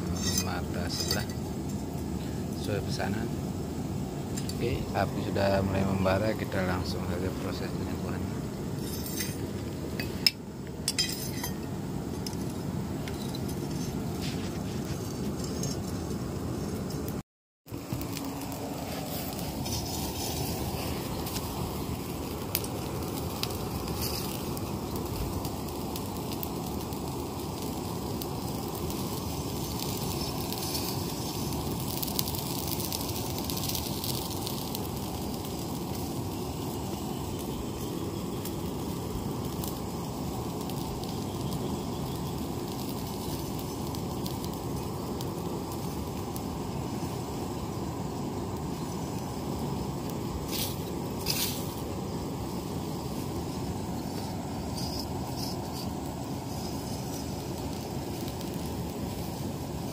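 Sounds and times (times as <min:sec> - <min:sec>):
forge fire rushing and crackling: 0:00.0 - 0:59.9.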